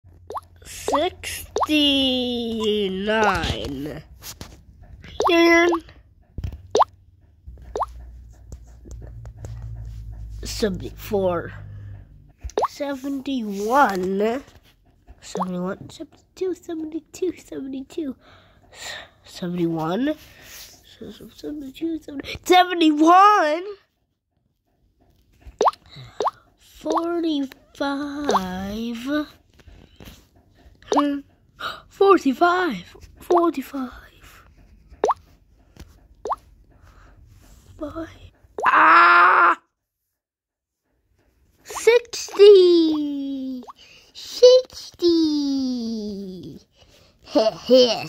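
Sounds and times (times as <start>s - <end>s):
rising bloop pops: 0.3s - 1.7s, 7.7s - 7.9s.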